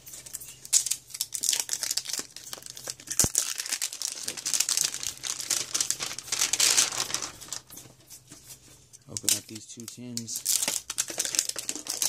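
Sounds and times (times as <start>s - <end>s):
plastic shrink wrap crinkling: 0.0s - 12.0s.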